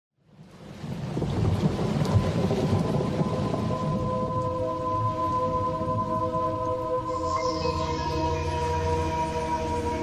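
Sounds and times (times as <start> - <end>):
low rumbling crackling noise: 0.2 - 10.0.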